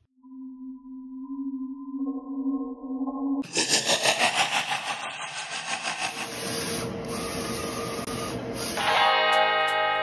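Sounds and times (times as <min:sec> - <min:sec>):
small printing machine running: 0:05.1 - 0:08.8.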